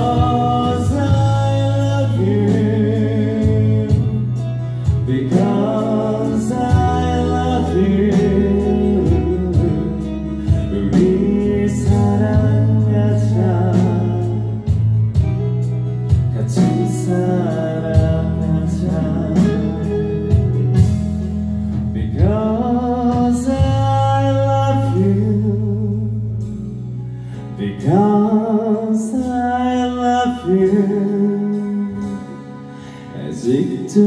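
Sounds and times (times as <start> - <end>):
lead vocalist singing: 0.0 - 15.4, 16.1 - 21.0, 21.8 - 26.6, 27.4 - 34.0
steady drum beat: 0.0 - 24.2
electric and acoustic guitars: 0.0 - 34.0.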